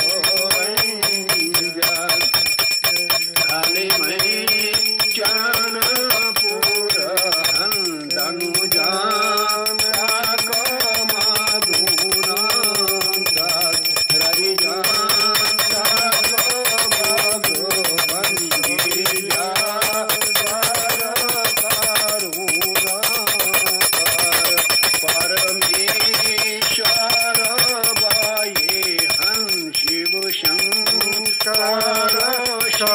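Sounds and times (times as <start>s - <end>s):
person chanting: 0.0s - 32.9s
small hand bell ringing rapidly: 0.0s - 32.9s.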